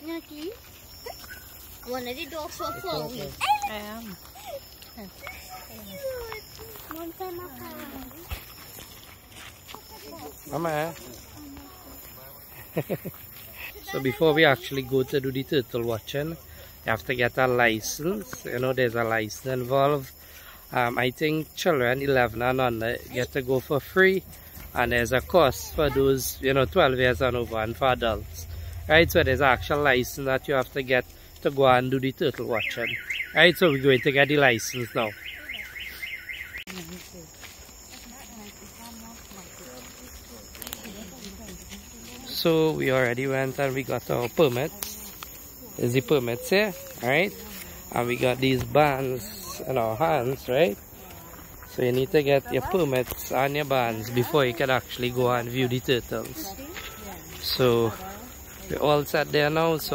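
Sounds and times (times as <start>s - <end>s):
footsteps on gravelly dirt: 0.0s - 16.4s, 17.2s - 59.9s
car alarm siren warbling: 32.4s - 36.6s.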